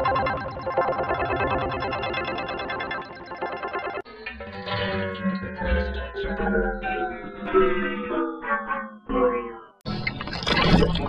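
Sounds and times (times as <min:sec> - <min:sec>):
music tune: 0:00.0 - 0:07.5.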